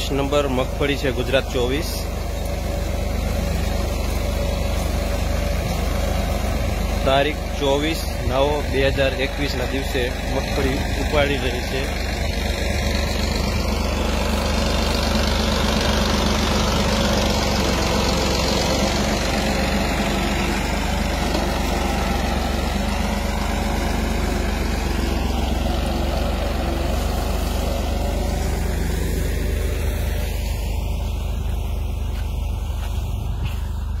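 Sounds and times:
tractor diesel engine running: 0.0 - 34.0.

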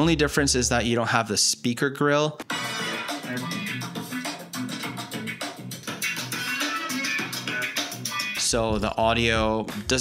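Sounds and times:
music with guitar and drum beat: 2.4 - 10.0.

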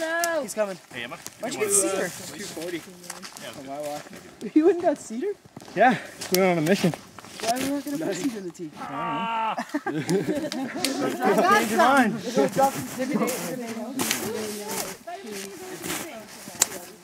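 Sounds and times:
people talking and calling out: 0.0 - 17.0.

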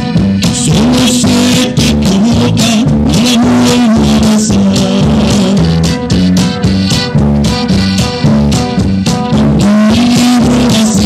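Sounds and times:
accordion: 0.0 - 11.0
drums with cymbals: 0.0 - 11.0
electric bass: 0.0 - 11.0
guitar: 0.0 - 11.0.

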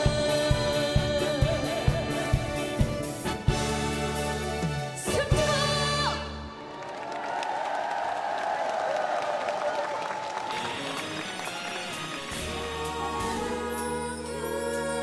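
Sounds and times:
live band playing: 0.0 - 6.8, 10.5 - 15.0
crowd clapping and cheering: 6.3 - 14.0.

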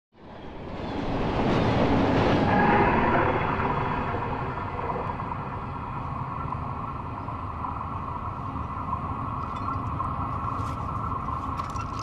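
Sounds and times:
distant train rumbling on rails: 0.2 - 11.6.

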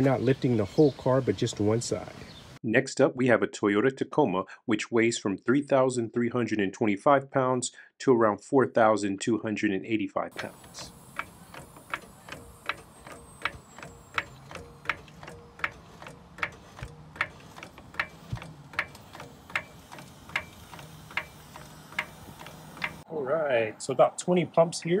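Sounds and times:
floor jack clicking: 10.4 - 23.0.

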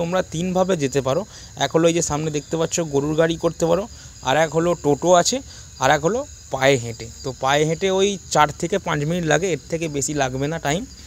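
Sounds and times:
crickets chirring: 0.0 - 11.0
man talking: 0.0 - 11.0.

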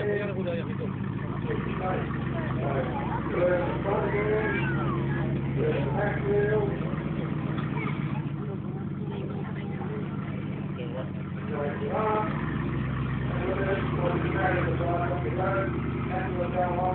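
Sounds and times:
truck engine at low revs: 0.0 - 16.9
voices chattering: 0.0 - 16.9.

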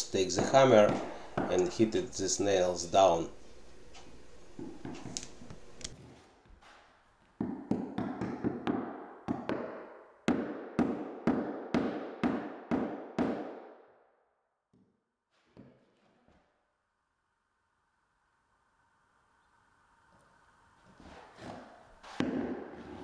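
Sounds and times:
hammer striking nails into wood: 0.3 - 1.7, 7.4 - 13.7.

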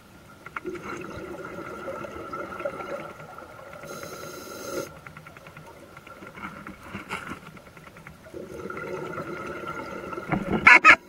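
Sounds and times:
high hiss: 3.9 - 5.0.

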